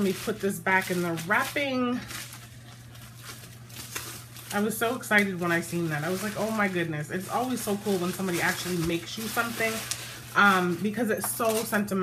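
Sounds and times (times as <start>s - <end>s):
wrapping material crinkling: 0.0s - 12.0s.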